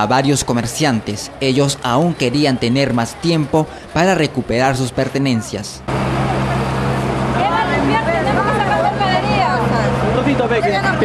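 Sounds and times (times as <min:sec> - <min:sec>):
people talking: 0:00.0 - 0:11.0
engine running: 0:03.7 - 0:11.0.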